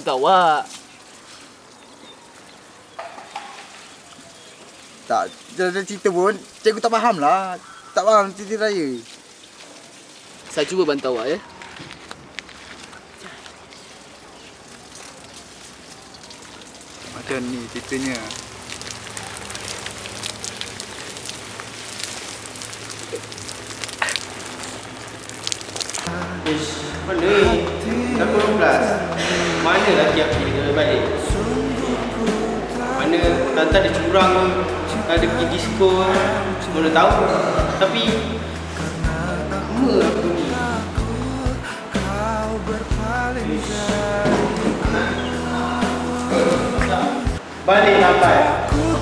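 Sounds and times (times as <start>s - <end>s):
water spraying and pattering: 0.0s - 49.0s.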